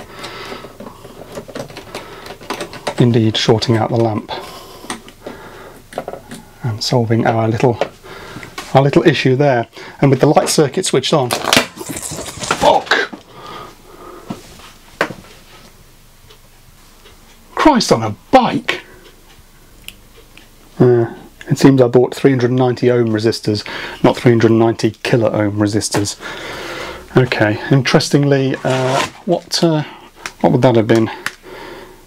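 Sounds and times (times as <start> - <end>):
small clicks and scrapes of wires: 0.5 - 3.0
faint breathy hiss: 23.6 - 24.1, 26.1 - 27.9, 31.0 - 32.0.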